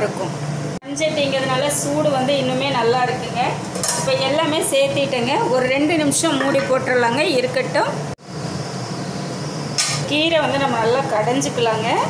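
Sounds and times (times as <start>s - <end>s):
metal lid clattering: 3.8s - 4.2s, 9.8s - 10.1s.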